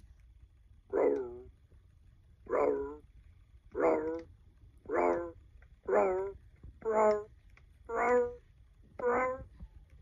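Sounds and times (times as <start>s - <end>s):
toy guitar dog howl notes: 0.9s - 1.4s, 2.5s - 3.0s, 3.7s - 4.3s, 4.9s - 7.3s, 7.9s - 8.4s, 9.0s - 9.5s.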